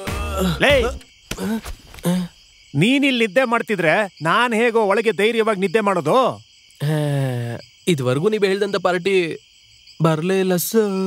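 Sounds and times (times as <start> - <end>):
crickets chirring: 0.0 - 11.0
man speaking: 0.1 - 1.0, 2.8 - 9.4, 10.0 - 11.0.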